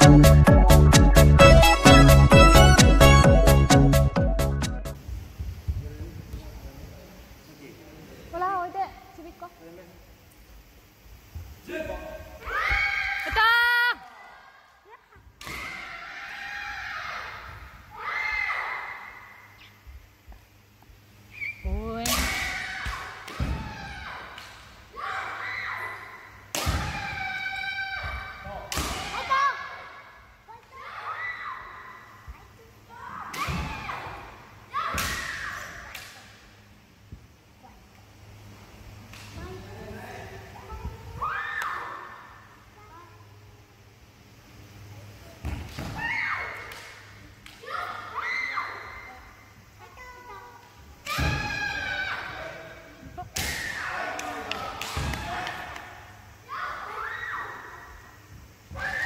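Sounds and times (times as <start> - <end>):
high-pitched shout: 12.4 - 14.4
children shouting: 15.4 - 19.6, 22.3 - 28.5, 29.1 - 32.2, 47.6 - 50.4, 51.0 - 52.7, 53.6 - 59.0.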